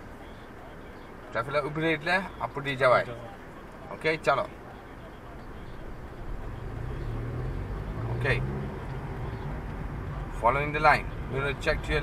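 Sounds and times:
car engine pulling away: 5.8s - 11.5s.

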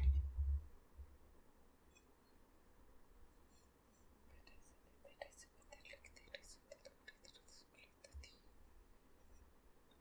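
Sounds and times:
person whispering: 4.3s - 8.5s.

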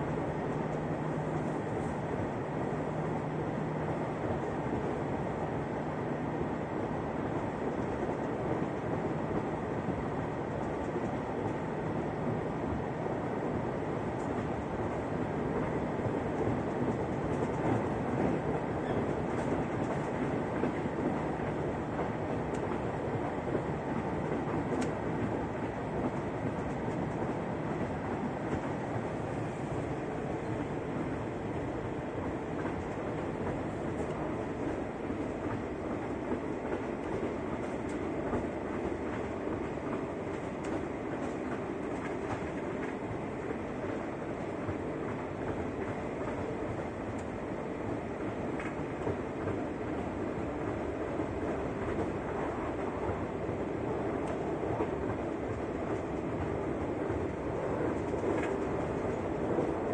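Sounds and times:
train wheels rolling on rails: 0.0s - 59.9s.

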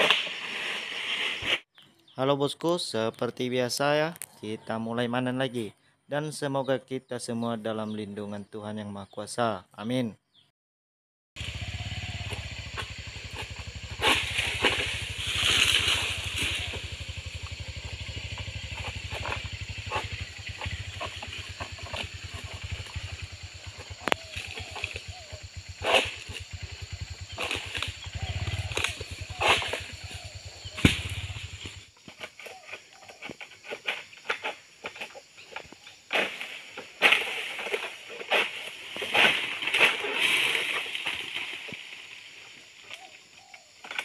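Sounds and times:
leafy rustling: 11.4s - 31.6s
low engine hum: 11.4s - 31.8s
pole sickle cracking fronds: 11.4s - 32.7s, 36.1s - 42.1s.

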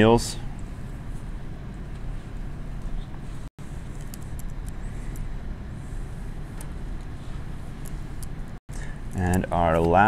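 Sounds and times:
low room noise rumble: 0.0s - 10.0s.

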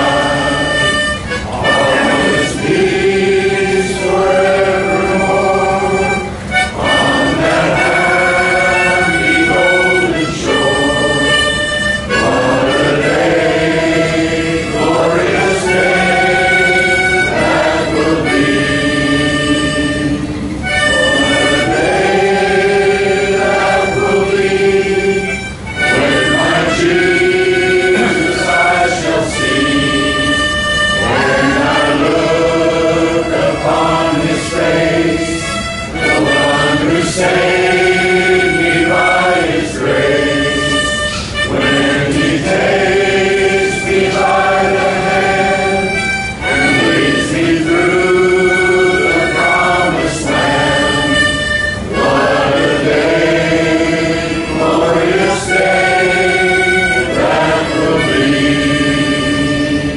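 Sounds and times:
harmonica playing slow melody: 0.0s - 59.9s.

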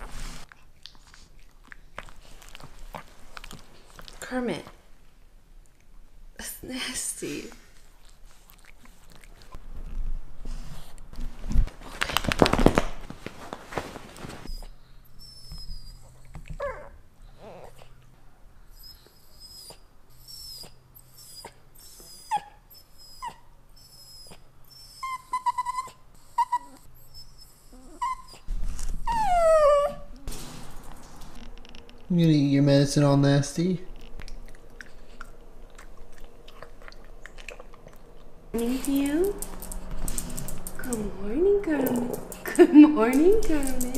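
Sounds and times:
rustling: 7.7s - 14.6s
dog whining and whimpering: 14.5s - 18.0s, 18.7s - 30.3s.

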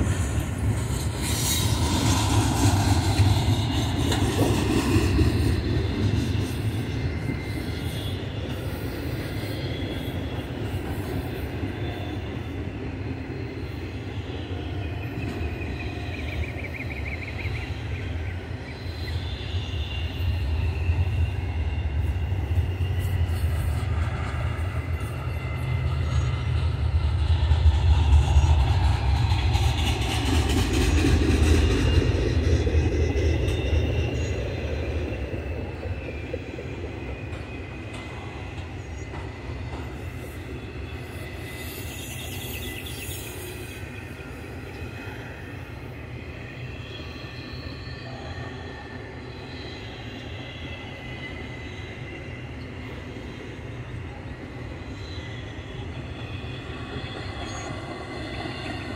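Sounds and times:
high-pitched wheel squeal: 39.9s - 45.5s.

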